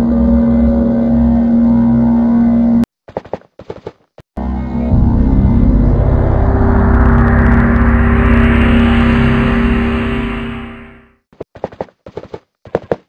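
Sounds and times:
deep cinematic drone: 0.0 - 2.8, 4.4 - 11.2.

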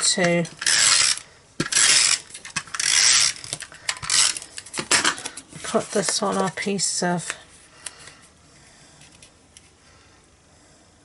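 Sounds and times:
tape dispenser clicks: 0.1 - 5.3.

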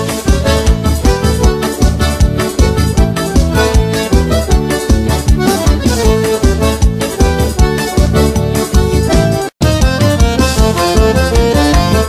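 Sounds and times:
accordion melody: 0.0 - 12.0
bass drum beats: 0.0 - 12.0.

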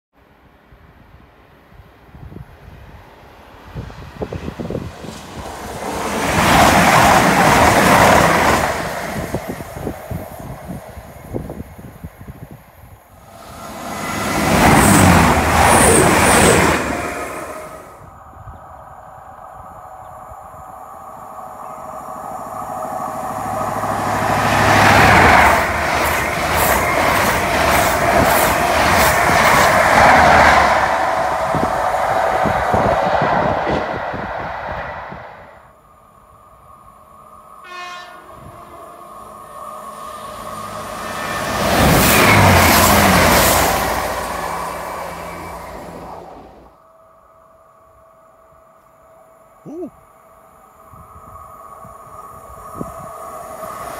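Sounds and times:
passenger train passing at speed: 0.2 - 53.9.

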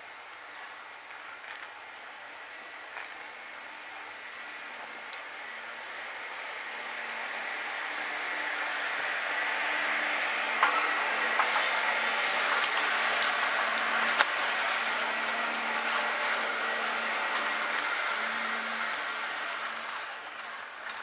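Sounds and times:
skis sliding on snow: 0.0 - 3.5, 6.8 - 21.0
machinery low hum: 1.9 - 21.0.

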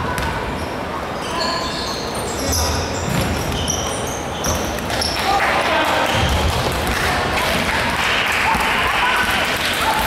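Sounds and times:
sneakers squeaking: 0.0 - 5.3.

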